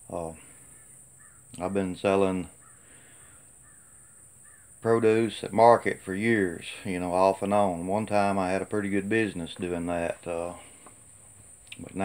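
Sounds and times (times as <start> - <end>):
faint distant bird calls: 0.0 - 12.0.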